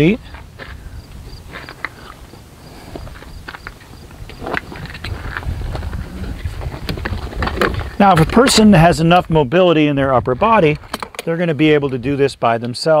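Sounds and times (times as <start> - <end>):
low uneven rumble: 0.0 - 10.8.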